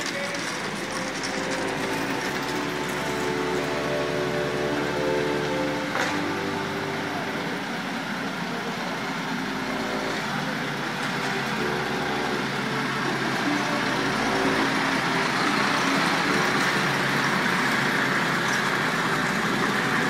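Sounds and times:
diesel truck engine running: 0:00.0 - 0:20.0
road noise: 0:00.0 - 0:20.0.

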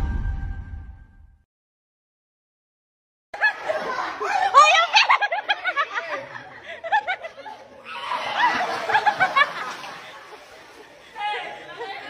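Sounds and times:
people chattering and calling out: 0:03.4 - 0:12.0.

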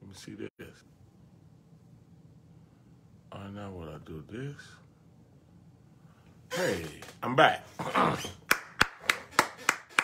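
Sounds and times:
man clapping hands: 0:08.4 - 0:10.0.

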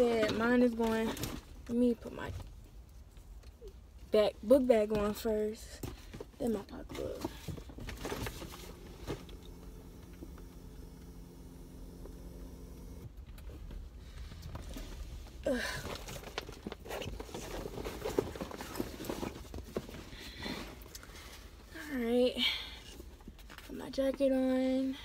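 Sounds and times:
steady low hum: 0:07.9 - 0:16.0.

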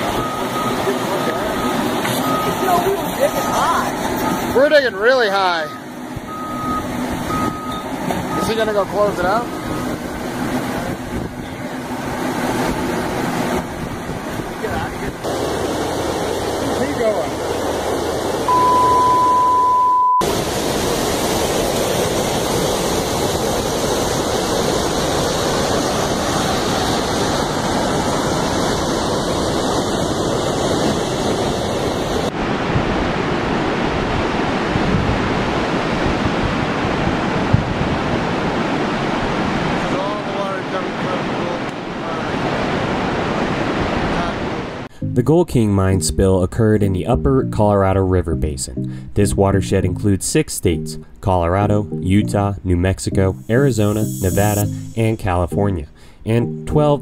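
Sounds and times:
high beep: 0:00.2 - 0:04.4, 0:05.7 - 0:08.7, 0:18.5 - 0:20.2, 0:45.0 - 0:45.4, 0:53.1 - 0:57.0
water rushing down creek: 0:06.9 - 0:18.5, 0:20.2 - 0:44.9
wind on microphone: 0:09.5 - 0:15.9, 0:20.3 - 0:40.0.

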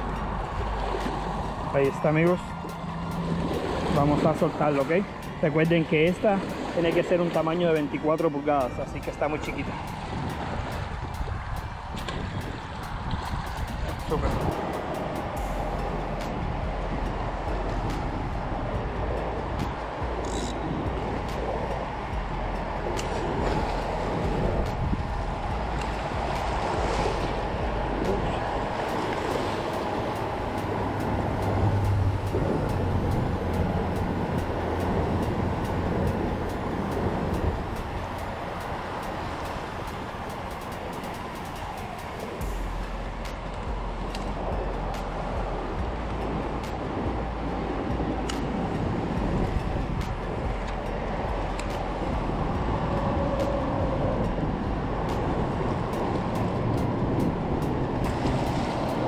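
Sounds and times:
traffic rumbling on bridge overhead: 0:00.0 - 0:59.0
waves lapping against seawall: 0:00.0 - 0:59.0.

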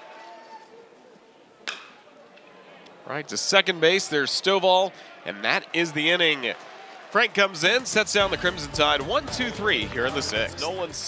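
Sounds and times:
faint crowd background: 0:00.0 - 0:11.0
bat hitting baseball: 0:01.6 - 0:02.0.

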